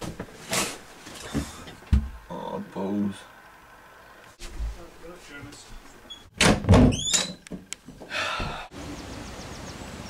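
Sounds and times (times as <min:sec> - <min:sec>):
door thumping: 0:01.8 - 0:02.2, 0:06.3 - 0:08.6
door squeaking: 0:06.0 - 0:07.5.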